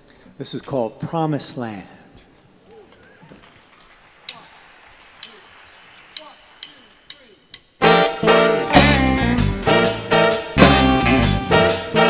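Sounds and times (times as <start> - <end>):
drumsticks clicking: 3.7 - 7.8
band playing loudly: 7.8 - 12.0.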